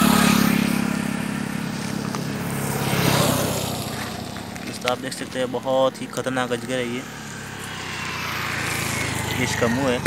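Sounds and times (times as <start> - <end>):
vehicles passing by: 0.0 - 10.0.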